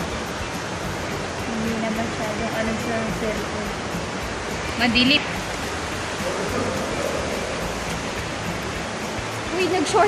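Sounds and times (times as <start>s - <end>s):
water rushing over rock: 0.0s - 10.0s.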